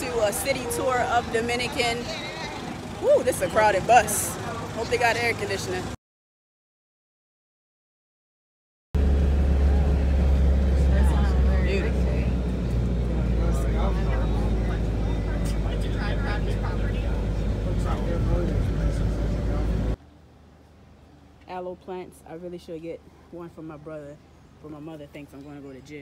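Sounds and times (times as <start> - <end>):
bus engine deep rumble: 0.0 - 6.0, 9.0 - 20.0
people talking: 0.0 - 6.0, 9.6 - 20.0, 21.4 - 26.0.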